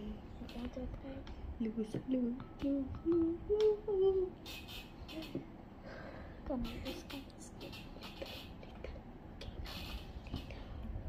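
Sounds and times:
child humming notes: 0.0s - 5.5s, 6.4s - 8.8s.

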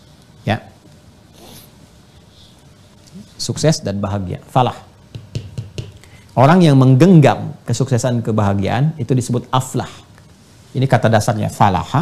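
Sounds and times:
faint high-pitched rustling hiss: 0.0s - 12.0s.

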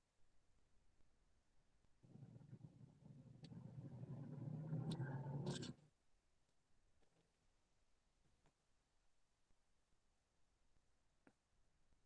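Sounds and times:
low steady hum: 2.0s - 5.9s
writing on paper scratching: 4.6s - 5.8s.

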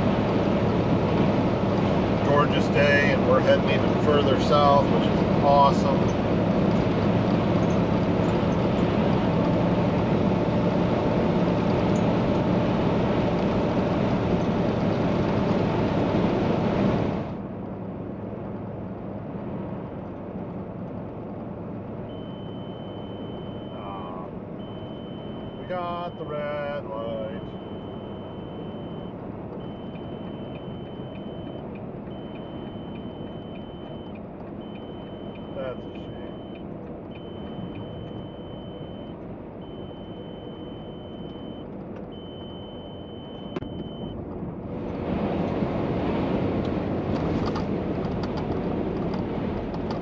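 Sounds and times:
truck engine and road drone: 0.0s - 50.0s
faint high steady tone: 22.1s - 29.1s.

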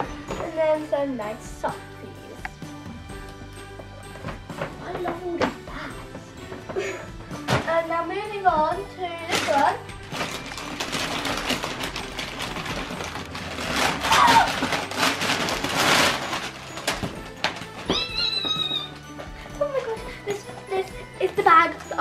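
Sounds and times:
background music: 0.0s - 22.0s
wrapping paper rustling and tearing: 9.2s - 20.0s.

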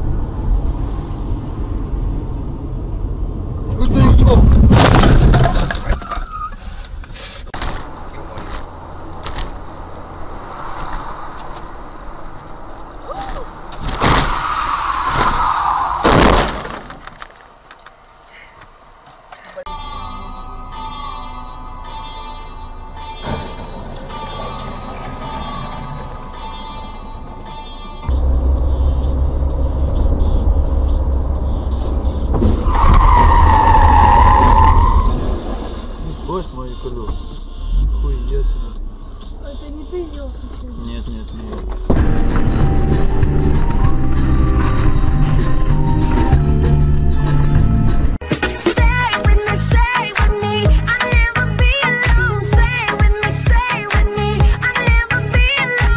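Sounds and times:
road and engine rumble: 0.0s - 55.9s
tyre squeal: 5.7s - 7.5s, 32.4s - 35.9s.

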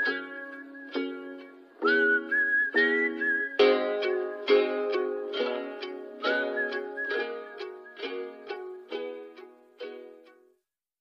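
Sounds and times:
plucked banjo riff: 0.0s - 10.6s.

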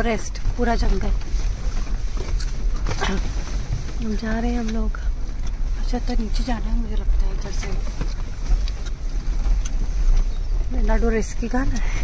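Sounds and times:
vehicle cabin rumble: 0.0s - 12.0s.

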